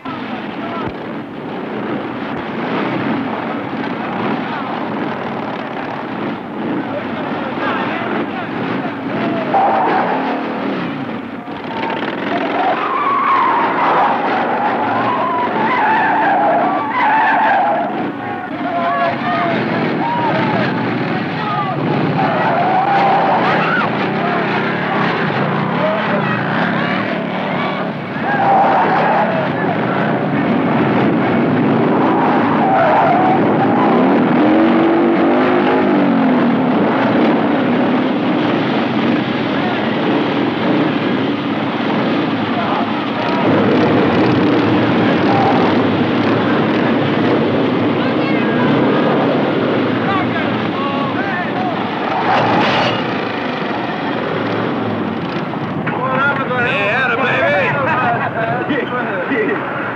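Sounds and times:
motorcycle engines revving: 0.0s - 59.9s
men shouting: 11.7s - 30.2s, 50.1s - 53.2s.

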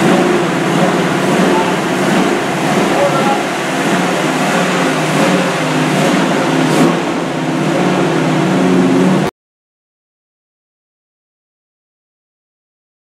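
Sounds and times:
car engine running: 0.0s - 9.3s.

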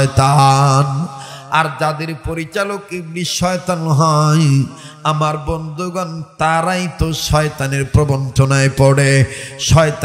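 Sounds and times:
man preaching in chanted voice: 0.0s - 10.0s.

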